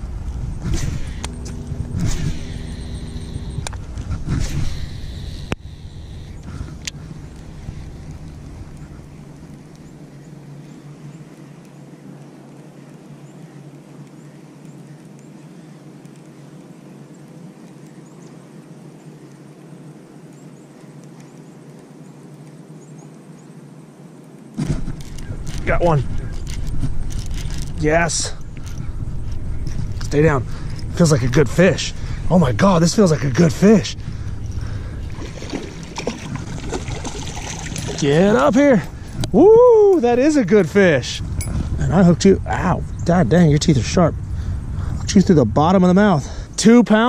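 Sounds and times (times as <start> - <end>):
fishing reel whirring: 0.7 - 9.2.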